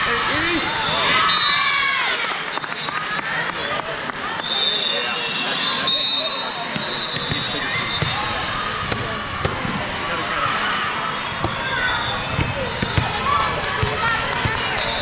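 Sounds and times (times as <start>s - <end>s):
babble of voices in hall: 0.0s - 15.0s.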